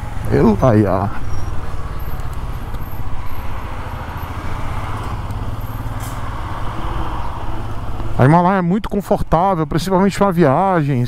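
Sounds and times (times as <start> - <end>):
motorcycle engine running: 0.0 - 5.9
road and traffic noise: 0.0 - 11.0.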